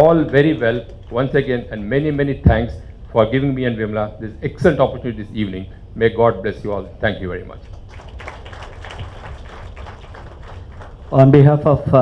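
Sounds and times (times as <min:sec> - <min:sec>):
audience clapping: 0:00.0 - 0:01.4, 0:07.6 - 0:11.4
speech: 0:00.0 - 0:07.6, 0:11.1 - 0:12.0.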